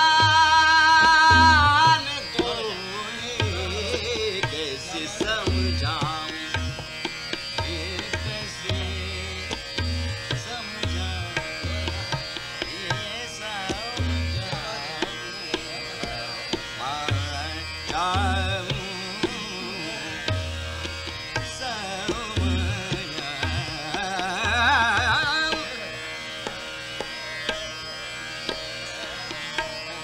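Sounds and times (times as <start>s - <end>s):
man singing classical vocals: 0.0s - 6.9s, 7.5s - 20.3s, 21.4s - 26.0s
tabla playing: 0.0s - 30.0s.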